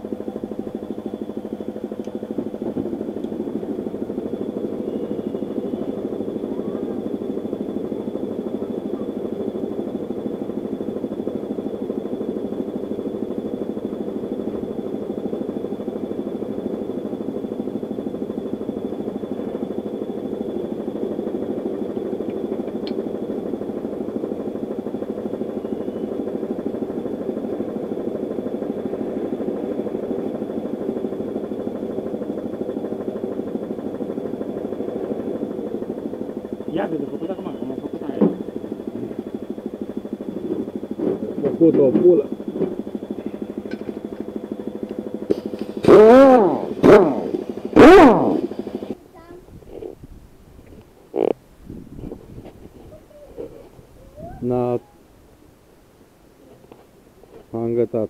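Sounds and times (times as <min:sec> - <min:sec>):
tractor engine idling: 0:00.0 - 0:49.0
faint high whistle: 0:04.8 - 0:05.8, 0:25.6 - 0:26.2
air pumping through hose: 0:45.3 - 0:47.4.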